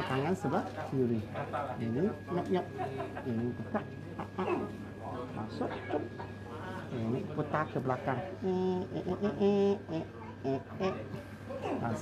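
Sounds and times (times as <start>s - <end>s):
person humming held notes: 8.4s - 11.2s
person murmuring: 8.4s - 12.0s.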